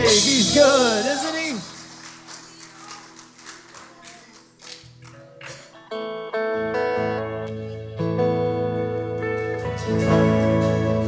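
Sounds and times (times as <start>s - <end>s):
worship band playing quietly: 0.0s - 4.5s.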